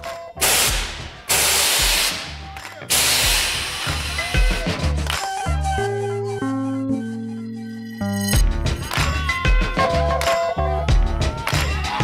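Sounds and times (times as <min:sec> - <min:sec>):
music: 0:00.0 - 0:12.0
air suspension hissing: 0:00.4 - 0:04.6.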